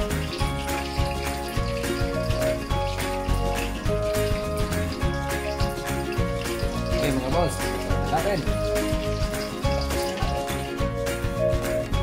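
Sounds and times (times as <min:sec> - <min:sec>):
held notes over bass beat: 0:00.0 - 0:12.0.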